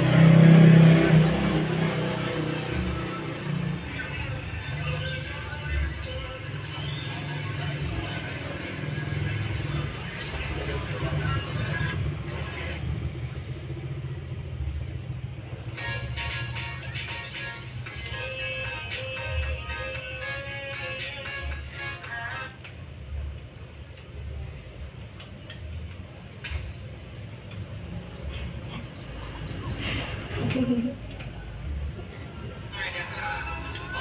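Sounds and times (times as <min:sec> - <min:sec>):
low rumble of background noise: 0:00.0 - 0:34.0.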